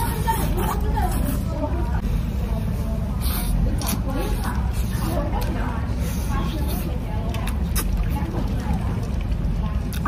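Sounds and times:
diners chattering: 0.0s - 10.0s
close chewing: 3.2s - 10.0s.

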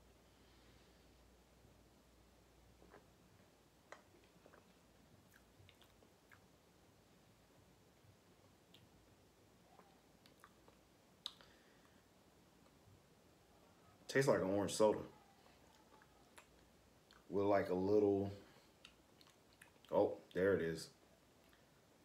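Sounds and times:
mouth clicks: 9.7s - 11.6s.

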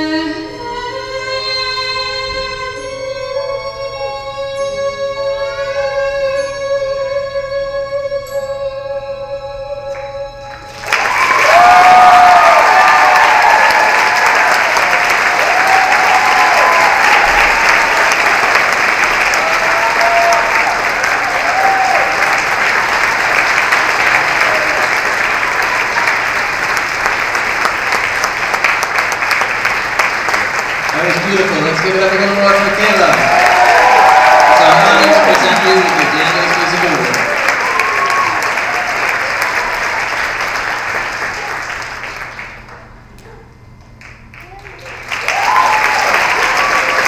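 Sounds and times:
audience applauding and cheering: 10.5s - 47.0s
whoops: 10.7s - 18.1s, 19.3s - 22.5s, 33.1s - 40.0s, 44.4s - 47.0s
man talking: 30.9s - 33.3s, 34.6s - 37.3s.

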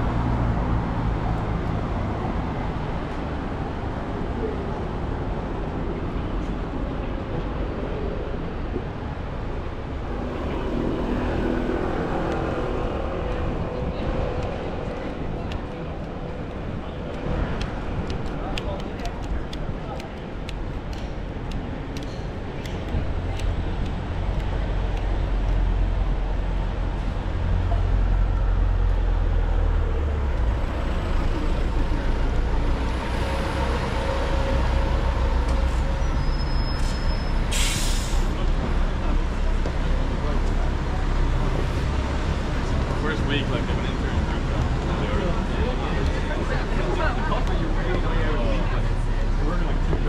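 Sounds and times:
road traffic rumble: 0.0s - 50.0s
passing vehicle engine drone: 9.3s - 18.4s, 22.8s - 37.5s.

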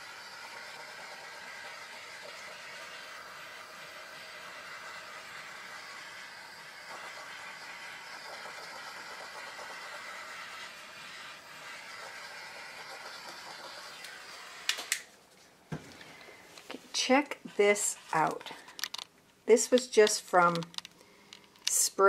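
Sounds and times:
butane torch hissing: 2.1s - 15.0s
sharp torch clicks: 14.0s - 15.1s.

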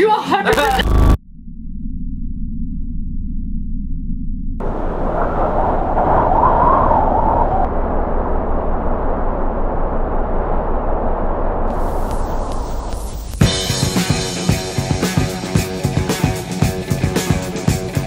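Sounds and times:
rushing wind: 4.6s - 13.6s
snowboard noise: 4.6s - 14.4s
rock music with drums and guitar: 13.4s - 18.0s.

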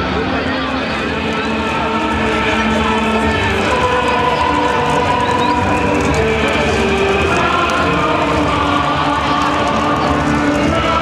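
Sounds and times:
dense noisy background: 0.0s - 11.0s
loud music with held notes: 0.0s - 11.0s.

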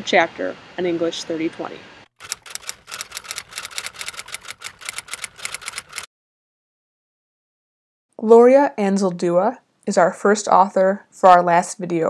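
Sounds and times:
typewriter keys clacking: 2.2s - 6.1s.

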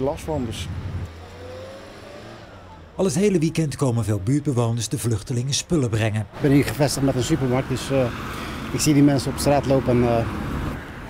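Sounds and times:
car engine passing: 0.0s - 4.6s, 6.2s - 11.0s.

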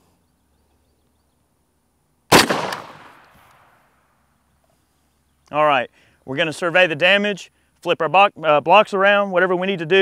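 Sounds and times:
rifle gunshot: 2.3s - 3.7s.

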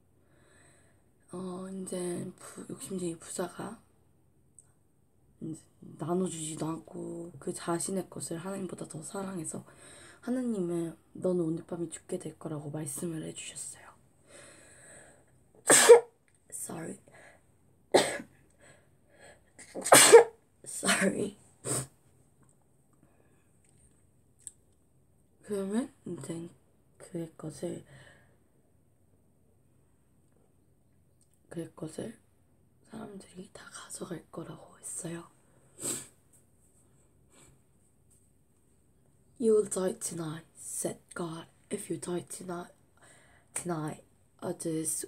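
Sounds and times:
girl sneezing: 15.6s - 16.1s, 18.0s - 18.3s, 19.6s - 20.4s, 21.6s - 21.9s.

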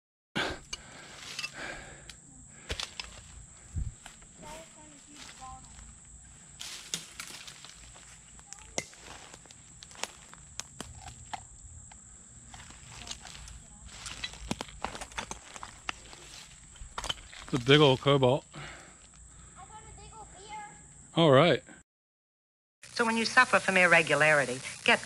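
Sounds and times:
footsteps crunching dry leaves: 2.7s - 11.3s, 12.5s - 18.1s.

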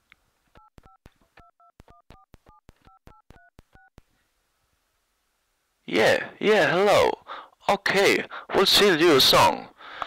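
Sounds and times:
telephone touch-tone beeps: 0.6s - 4.0s.

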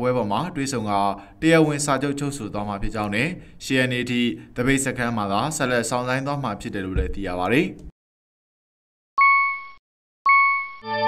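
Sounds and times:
electronic ding: 9.2s - 11.0s
low chime with overtones: 9.2s - 11.0s.

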